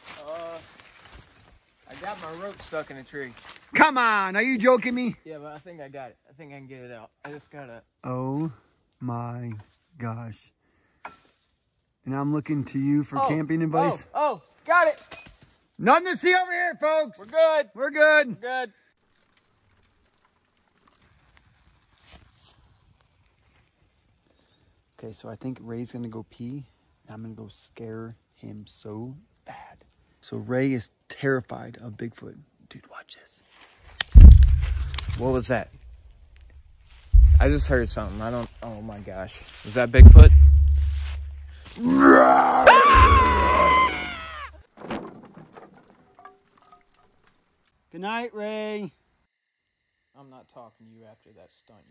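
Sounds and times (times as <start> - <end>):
campfire crackling and popping: 18.9 - 22.0, 33.9 - 39.3, 40.0 - 41.8, 42.9 - 44.4, 45.4 - 47.9
deep low rumble: 34.2 - 38.6, 40.0 - 41.9, 42.9 - 43.7
person crying out loudly: 41.8 - 44.5.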